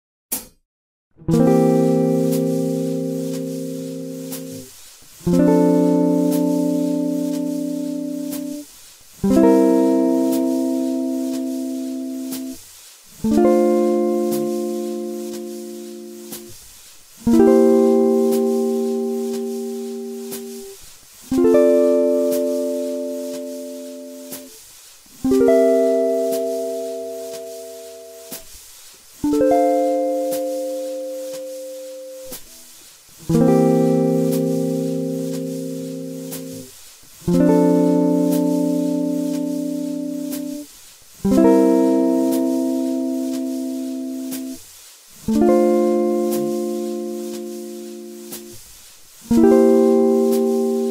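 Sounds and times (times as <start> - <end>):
guitar chords: 1.2 - 8.6, 9.2 - 12.6, 13.2 - 16.6, 17.2 - 20.7, 21.3 - 24.6, 25.2 - 28.5, 29.2 - 32.6, 33.2 - 44.6, 45.3 - 48.6, 49.3 - 50.9
faint ticks keeping time: 1.6 - 12.6, 13.2 - 16.6, 17.2 - 24.6, 25.3 - 28.5, 29.2 - 32.6, 33.3 - 36.7, 37.3 - 44.6, 45.3 - 48.6.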